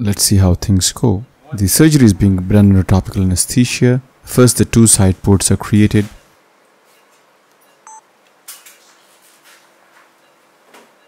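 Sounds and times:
short electronic beep: 0:07.0 - 0:08.0.

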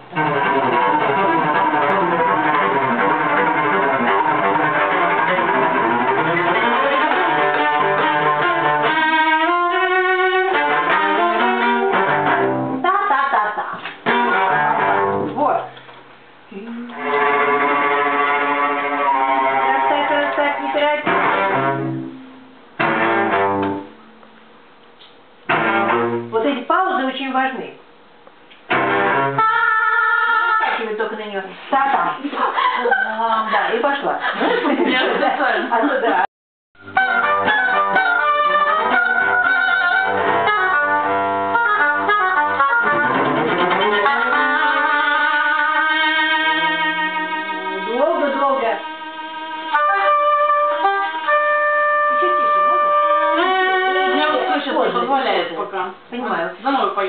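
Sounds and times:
string ensemble playing: 0:00.0 - 0:13.0, 0:13.8 - 0:15.8, 0:16.9 - 0:24.4, 0:25.5 - 0:26.3, 0:28.7 - 0:30.0, 0:36.8 - 0:55.4.

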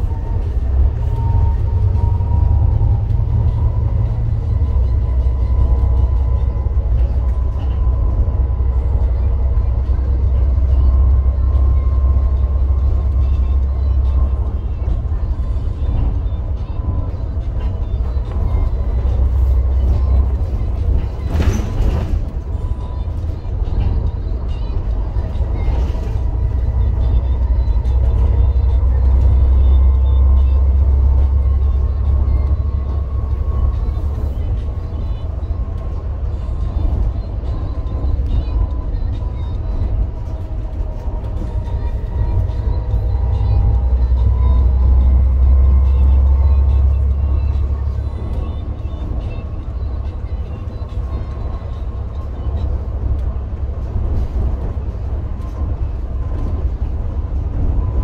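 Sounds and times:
bus diesel engine rumble: 0:00.0 - 0:58.0.

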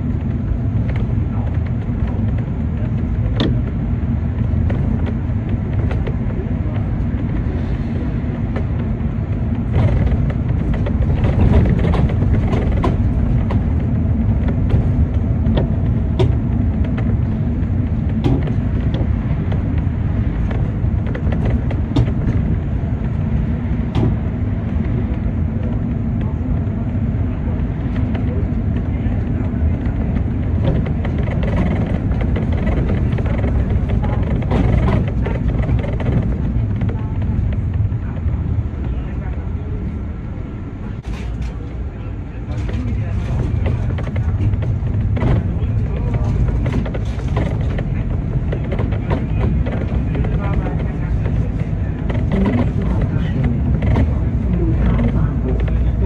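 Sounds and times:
bus engine and road rumble: 0:00.0 - 0:56.0
sharp rattles and clicks: 0:08.4 - 0:39.4, 0:42.4 - 0:56.0.

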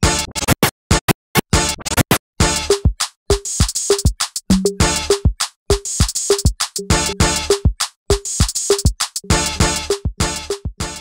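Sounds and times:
scratched music in choppy bursts: 0:00.0 - 0:11.0.

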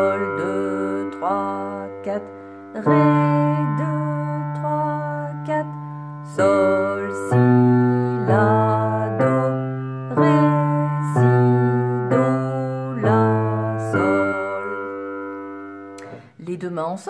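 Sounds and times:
low piano notes: 0:00.0 - 0:16.4.

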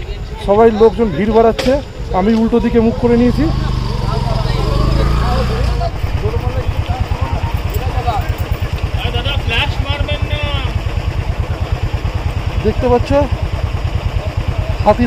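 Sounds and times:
people talking: 0:00.0 - 0:13.4, 0:14.1 - 0:15.0
motorcycle engine idling: 0:00.0 - 0:15.0.

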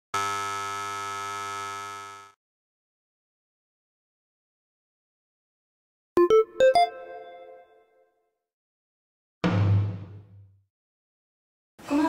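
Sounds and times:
electronic buzzer tone: 0:00.1 - 0:02.4.

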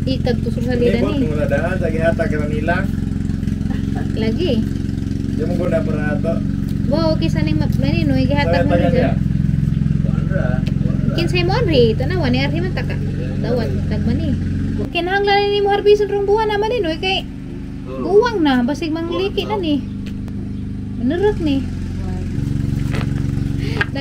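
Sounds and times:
people talking: 0:00.0 - 0:03.0, 0:03.6 - 0:04.7, 0:05.3 - 0:09.3, 0:10.0 - 0:19.9, 0:21.0 - 0:22.4, 0:23.0 - 0:24.0
engine humming: 0:00.0 - 0:24.0.

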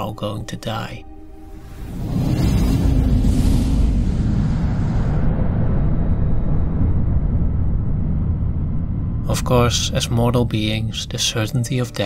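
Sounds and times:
deep rumble: 0:01.0 - 0:12.0.

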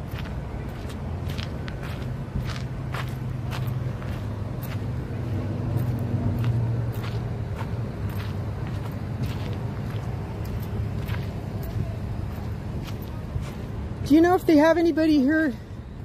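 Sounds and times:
footsteps clicking: 0:00.0 - 0:13.8
steady low hum: 0:00.0 - 0:16.0.

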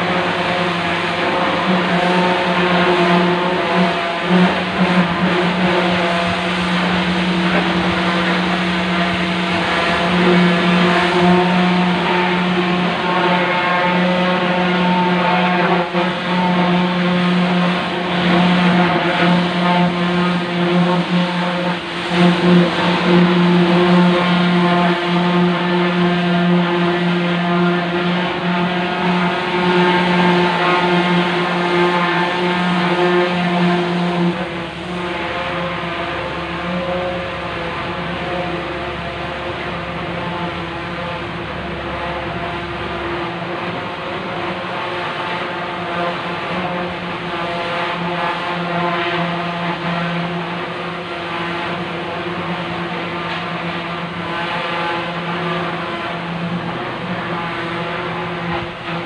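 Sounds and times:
boat engine running: 0:00.0 - 0:59.0.

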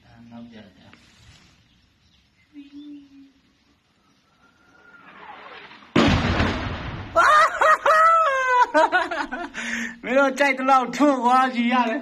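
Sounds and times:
incoming shell whistling: 0:04.2 - 0:07.2
loud explosion rumbling: 0:04.9 - 0:07.4.

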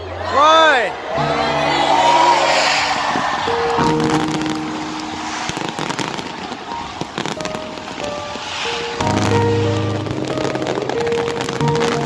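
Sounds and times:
fireworks crackling and popping: 0:02.3 - 0:12.0.

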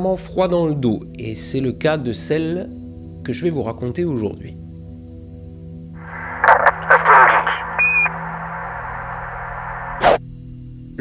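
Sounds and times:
radio static crackles: 0:06.0 - 0:10.2.

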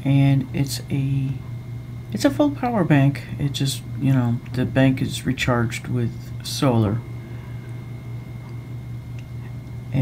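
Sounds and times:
faint high steady tone: 0:00.0 - 0:10.0
steady low hum: 0:00.0 - 0:10.0.

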